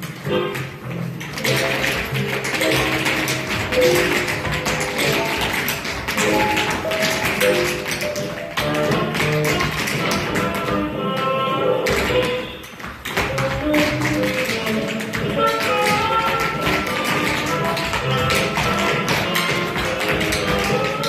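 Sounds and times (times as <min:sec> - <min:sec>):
latin-style music: 0:00.0 - 0:21.0
tap shoes on floor: 0:00.0 - 0:21.0.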